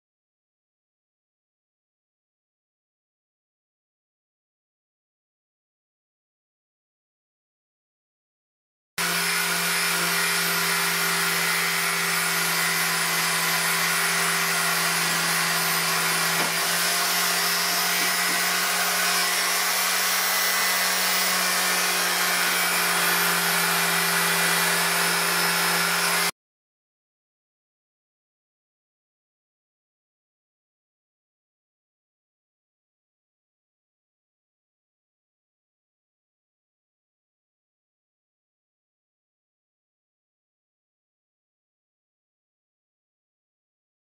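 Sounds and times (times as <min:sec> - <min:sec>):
electric cutter cutting leather: 0:09.0 - 0:26.4.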